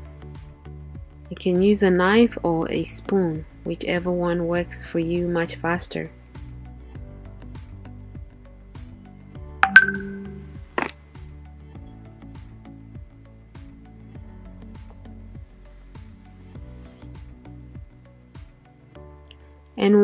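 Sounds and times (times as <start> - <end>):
soft background music: 0.0 - 20.0
clink against glass bowl: 9.6 - 10.3.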